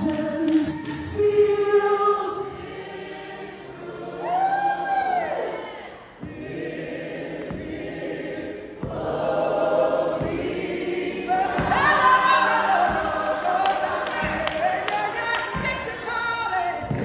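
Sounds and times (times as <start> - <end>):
woman singing lead: 0.0 - 2.6, 11.3 - 17.0
voices singing along: 0.0 - 17.0
low thumps: 6.1 - 14.6.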